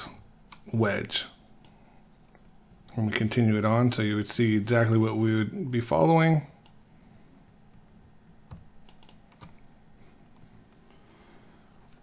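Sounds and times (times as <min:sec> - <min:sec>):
low steady hum: 0:00.0 - 0:12.0
faint computer clicks: 0:01.6 - 0:02.5, 0:08.5 - 0:09.6.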